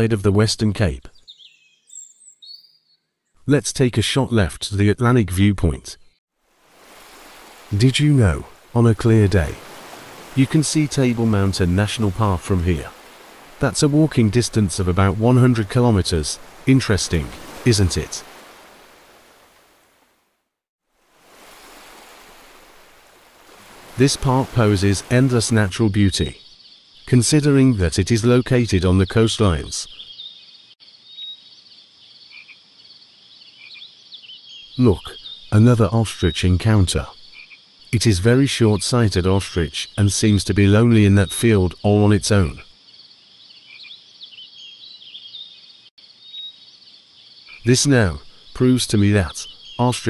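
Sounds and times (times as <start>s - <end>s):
small birds chirping: 0.0s - 3.4s, 7.1s - 19.4s, 21.5s - 50.0s.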